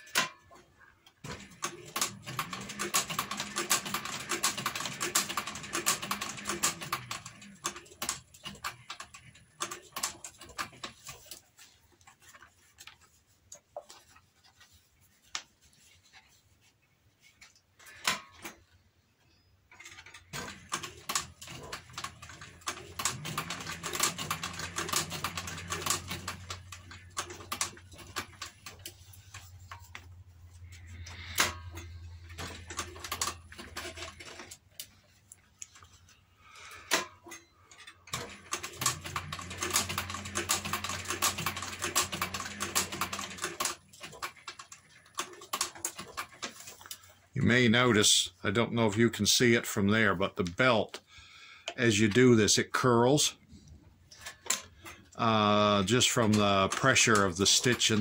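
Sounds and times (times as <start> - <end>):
sewing machine stitching: 0.0 - 11.4, 19.7 - 35.0, 36.6 - 47.1, 54.2 - 58.0.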